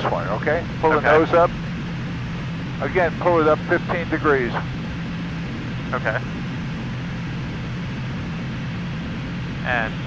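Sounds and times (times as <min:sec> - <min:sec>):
jet engine and airflow hum: 0:00.0 - 0:10.0.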